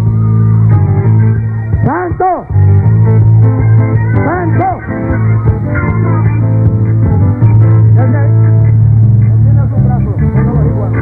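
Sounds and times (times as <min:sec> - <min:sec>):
live worship music: 0:00.0 - 0:11.0
steady low note: 0:00.0 - 0:11.0.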